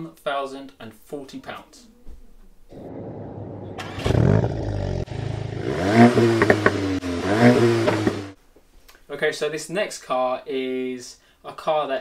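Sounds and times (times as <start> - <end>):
car engine revving: 2.7 - 8.4.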